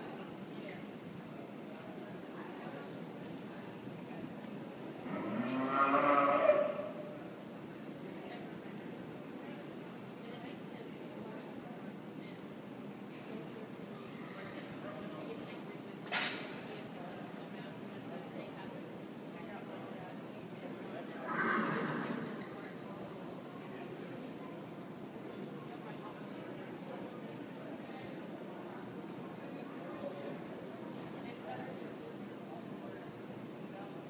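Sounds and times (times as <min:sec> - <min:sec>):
cow mooing: 0:05.1 - 0:06.9
horse whinnying: 0:21.3 - 0:22.4.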